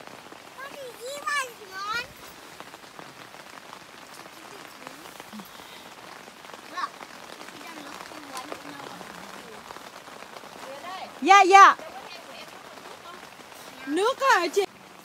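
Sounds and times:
light rain on tent fabric: 0.0s - 15.0s.

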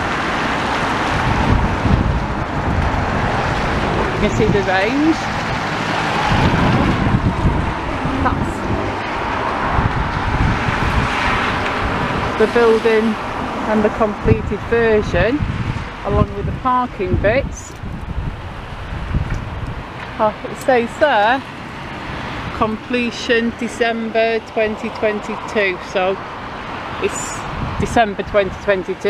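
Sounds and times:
wind buffeting microphone: 0.0s - 29.0s.

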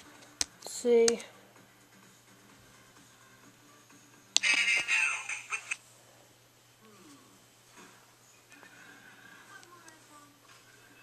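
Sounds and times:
music with singing from small speaker: 0.0s - 5.8s.

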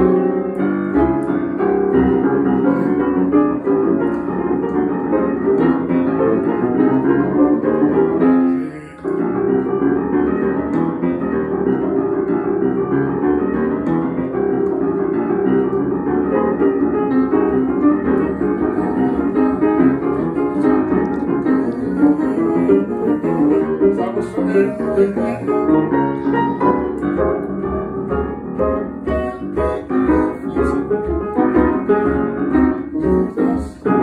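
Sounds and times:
gospel style piano: 0.0s - 34.0s.

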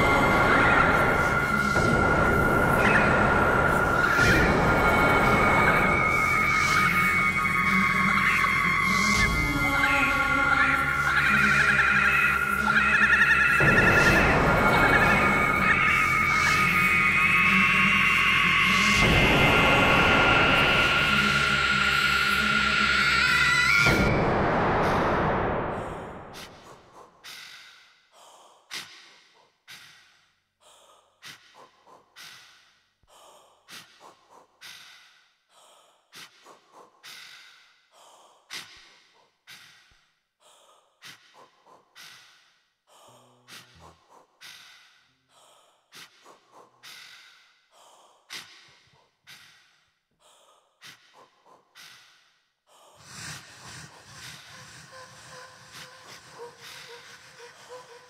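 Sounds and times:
breath-like puffs: 25.7s - 58.0s.

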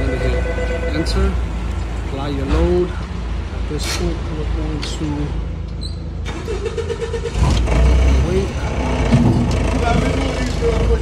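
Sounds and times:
forklift engine and hydraulics: 0.0s - 11.0s.

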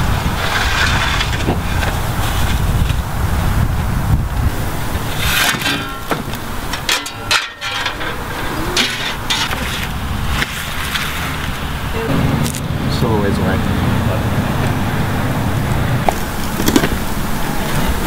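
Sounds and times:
wind buffeting microphone: 0.0s - 6.9s, 7.7s - 18.0s
traffic rumble: 0.0s - 18.0s.

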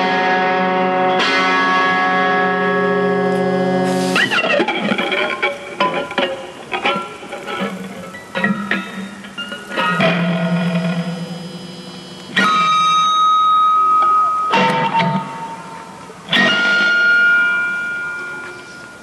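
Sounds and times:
electric guitar notes ringing: 0.0s - 19.0s.

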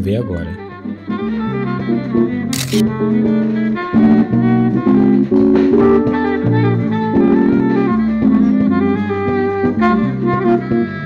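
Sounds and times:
small band playing live: 0.2s - 11.0s
short sharp click: 2.6s - 2.9s.

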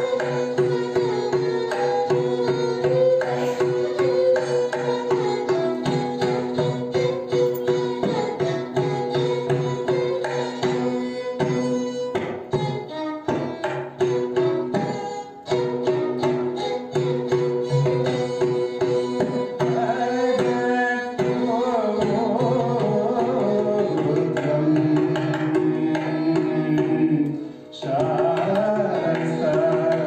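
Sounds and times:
violin playing ornamented notes: 0.0s - 30.0s.

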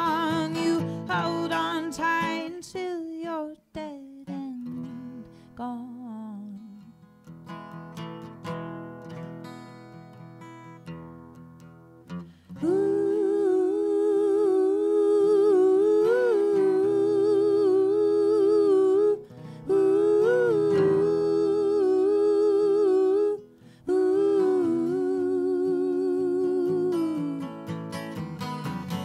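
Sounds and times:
voices singing in harmony: 0.0s - 2.7s, 12.6s - 27.7s
acoustic guitar: 0.0s - 29.0s.

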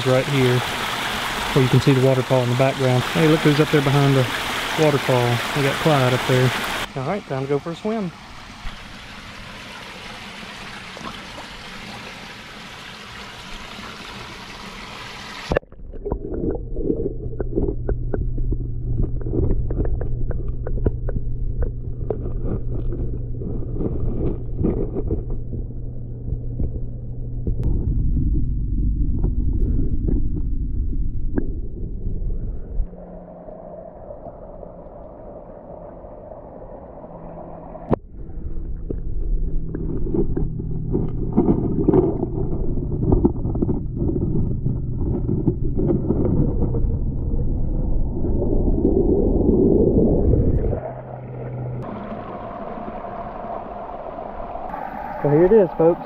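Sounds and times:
muffled underwater water rumble: 0.0s - 14.8s, 15.4s - 56.0s
bubbles churning: 0.0s - 26.6s, 38.8s - 56.0s.

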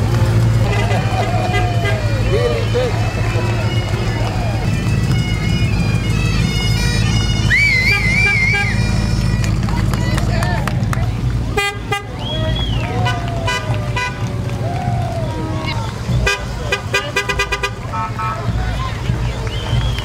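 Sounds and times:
horn toots: 0.0s - 9.9s, 11.5s - 14.4s, 15.2s - 20.0s
low vehicle engine rumble: 0.0s - 20.0s
onlookers' voices: 0.0s - 20.0s.

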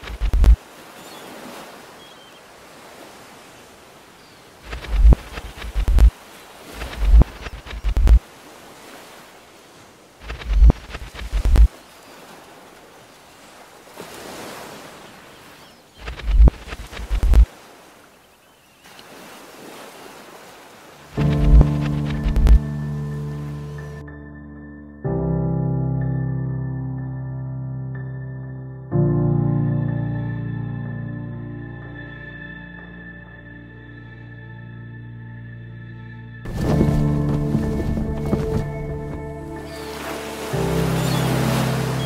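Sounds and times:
wind gusts buffeting microphone: 0.0s - 0.6s, 4.5s - 8.3s, 10.2s - 11.8s, 16.0s - 17.5s
sea waves: 0.0s - 24.1s, 36.4s - 42.0s.

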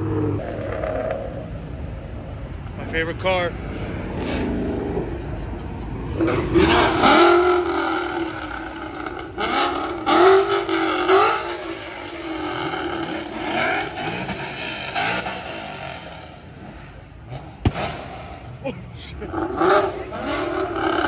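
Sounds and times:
car engines revving past: 0.0s - 21.0s
traffic noise: 0.0s - 21.0s
sharp crack: 17.3s - 18.4s.

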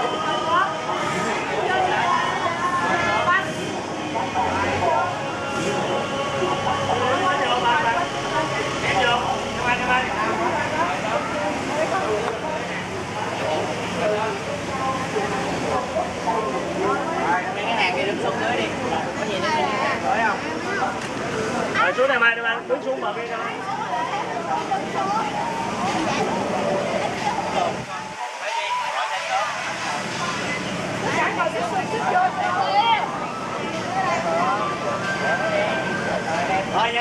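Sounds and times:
children chattering: 0.0s - 37.0s.

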